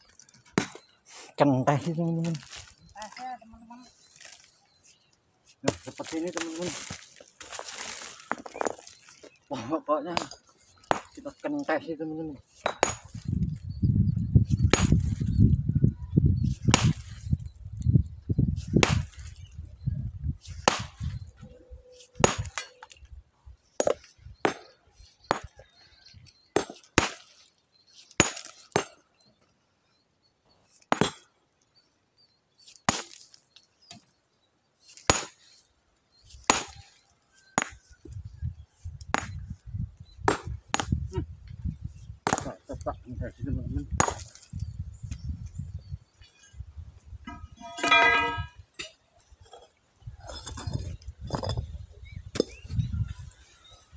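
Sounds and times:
sledgehammer striking rock: 0:10.2 - 0:11.2, 0:12.6 - 0:13.2, 0:16.7 - 0:17.2, 0:18.8 - 0:19.3, 0:28.2 - 0:29.0, 0:30.9 - 0:31.3, 0:35.1 - 0:35.4, 0:36.4 - 0:36.9, 0:39.1 - 0:39.4, 0:40.2 - 0:41.0, 0:43.9 - 0:44.4.

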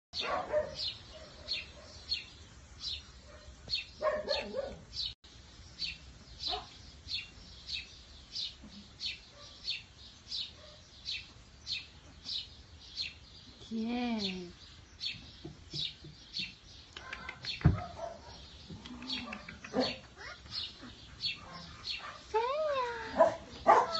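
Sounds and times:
small bird chirping: 0:00.2 - 0:23.9
puppy whining: 0:18.9 - 0:21.0.

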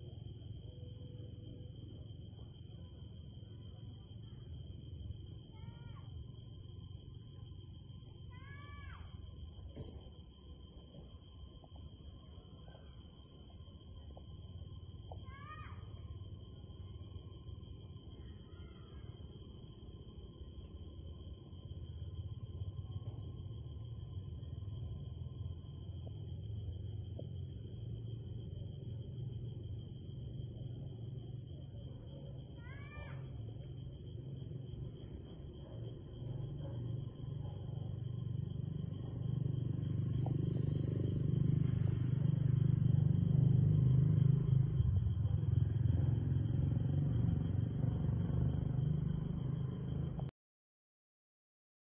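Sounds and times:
night insects trilling: 0:00.0 - 0:50.3.

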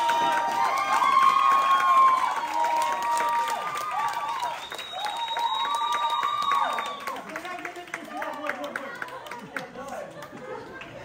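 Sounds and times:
cheering whoops: 0:00.0 - 0:07.3
small audience clapping: 0:00.0 - 0:11.0.

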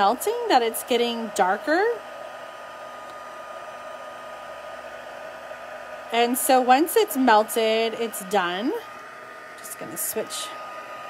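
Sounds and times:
heat tool blowing hot air: 0:00.0 - 0:11.0.

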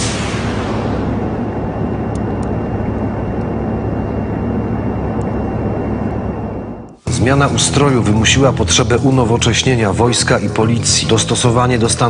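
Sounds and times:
aircraft cabin drone: 0:00.0 - 0:12.0.

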